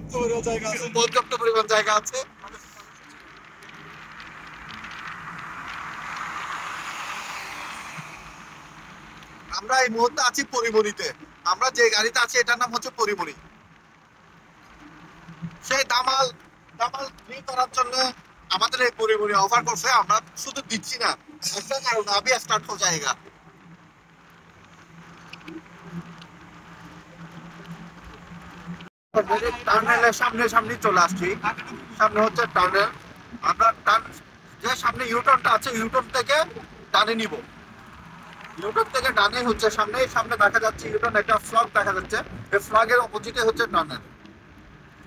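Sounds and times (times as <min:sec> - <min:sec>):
passing vehicle: 0:00.0 - 0:11.5, 0:19.6 - 0:45.0
road and tyre noise: 0:00.0 - 0:45.0.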